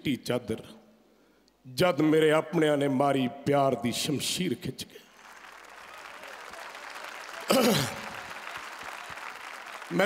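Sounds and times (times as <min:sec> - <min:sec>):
audience applauding: 0:05.0 - 0:10.0.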